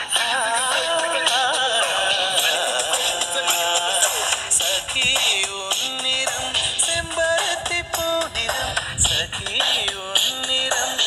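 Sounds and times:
dance song with singing: 0:00.0 - 0:11.0.

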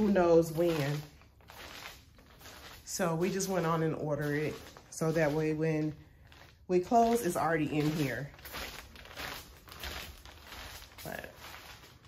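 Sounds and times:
footsteps on crinkling plastic: 0:00.0 - 0:12.0.

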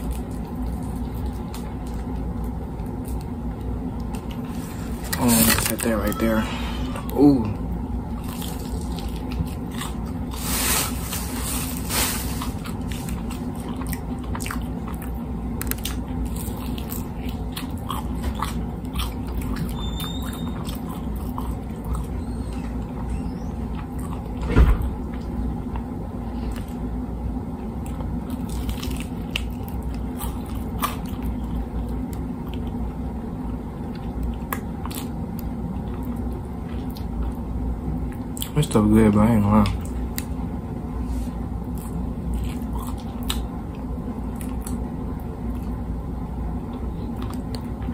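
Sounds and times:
chewing crispy fried chicken: 0:00.0 - 0:47.9
steady low hum: 0:00.0 - 0:47.9.

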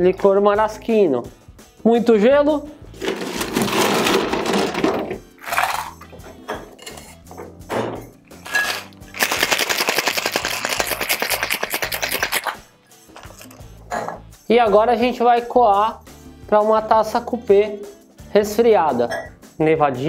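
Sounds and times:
ice rattling in shaker: 0:03.0 - 0:06.1, 0:08.3 - 0:12.6, 0:13.2 - 0:13.6
ice dropped into metal tin: 0:03.0 - 0:06.2, 0:08.3 - 0:11.0.

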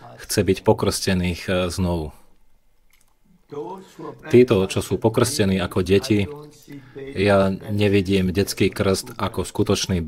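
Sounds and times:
man speaking: 0:00.0 - 0:02.3, 0:03.5 - 0:10.0.

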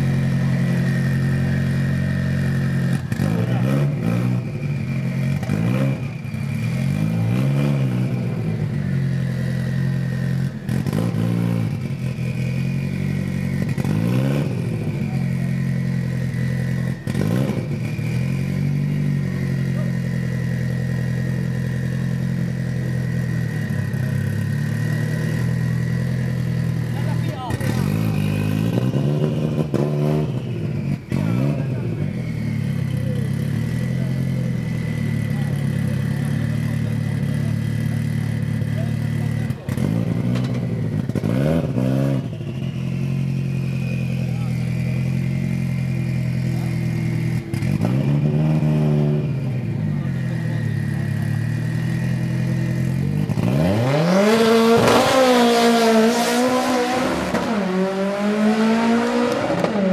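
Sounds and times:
car engine idling and revving: 0:00.0 - 0:59.9.

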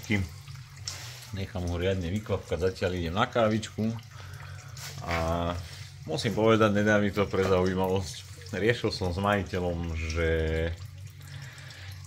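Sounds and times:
oil trickling into pan: 0:00.0 - 0:12.0.

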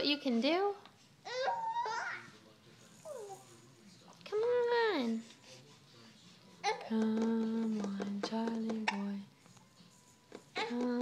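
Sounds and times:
baby cooing: 0:01.2 - 0:02.3.

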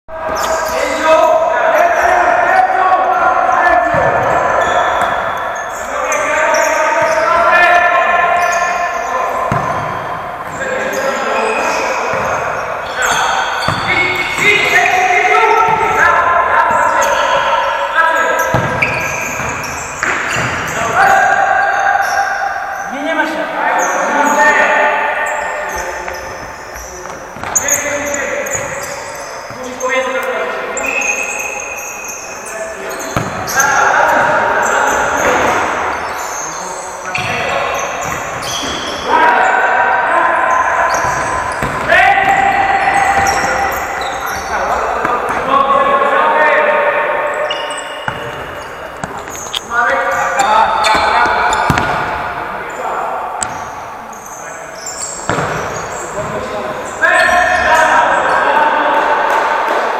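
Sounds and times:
players calling out: 0:00.1 - 0:59.9.

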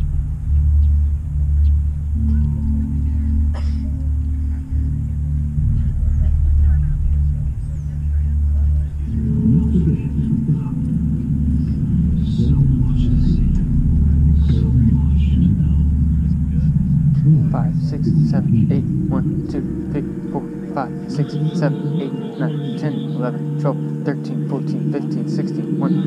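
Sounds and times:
wind rumble on microphone: 0:00.0 - 0:22.4
people talking: 0:01.6 - 0:26.0.

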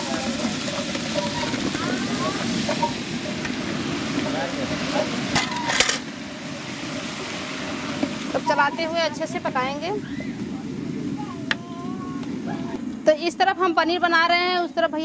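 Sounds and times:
paste sizzling in hot oil: 0:00.0 - 0:09.7.

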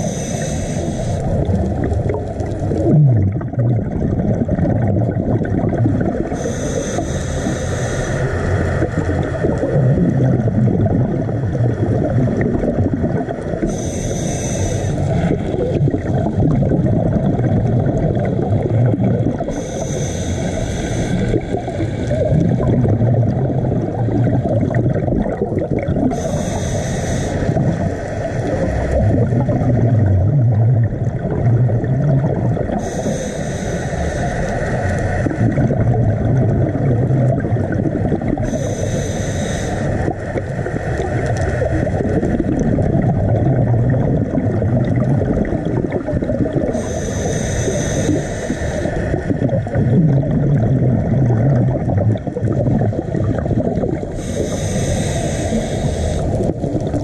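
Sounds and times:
scuba regulator breathing hiss: 0:00.0 - 0:01.4, 0:06.4 - 0:08.8, 0:13.6 - 0:15.7, 0:19.5 - 0:22.3, 0:26.1 - 0:28.9, 0:32.8 - 0:35.4, 0:38.4 - 0:40.8, 0:46.7 - 0:49.2, 0:54.1 - 0:56.5
low rumble of water and bubbles: 0:00.0 - 0:57.0.

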